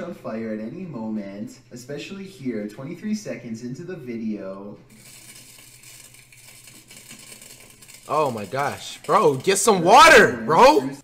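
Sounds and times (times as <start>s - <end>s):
electrical outlet crackling hiss: 4.8s - 10.6s.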